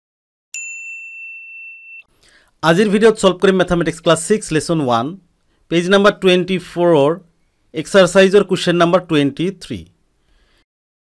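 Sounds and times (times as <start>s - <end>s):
high bell-like ding: 0.6s - 2.1s.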